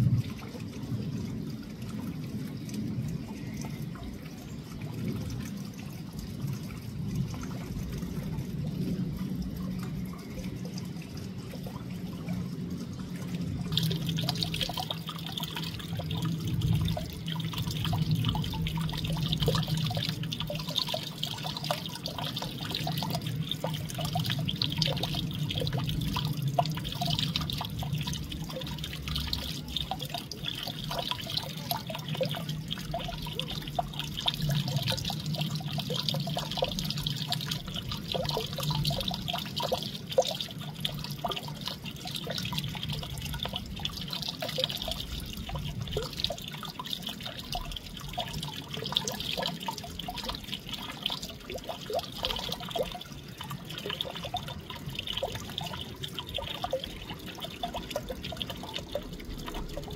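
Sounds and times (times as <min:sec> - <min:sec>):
low steady hum: 0:00.0 - 0:59.9
running water trickling: 0:00.0 - 0:59.9.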